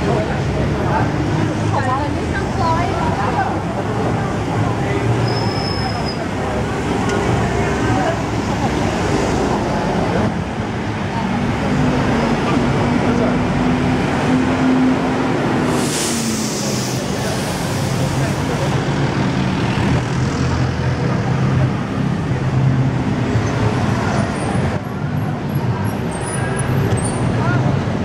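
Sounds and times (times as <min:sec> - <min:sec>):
people talking: 0:00.0 - 0:13.6, 0:15.8 - 0:19.2
car engines passing: 0:00.0 - 0:28.0.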